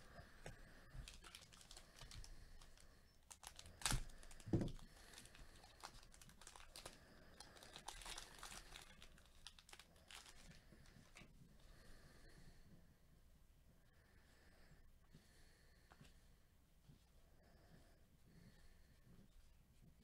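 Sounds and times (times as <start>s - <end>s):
foil wrapper crinkling: 0.9s - 11.2s.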